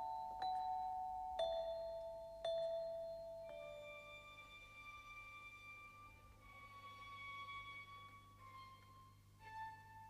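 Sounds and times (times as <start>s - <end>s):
orchestral music with bell notes: 0.0s - 6.6s.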